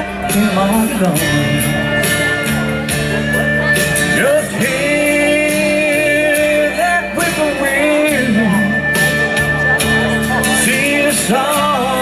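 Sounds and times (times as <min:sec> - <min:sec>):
slow country song with acoustic guitar: 0:00.0 - 0:12.0.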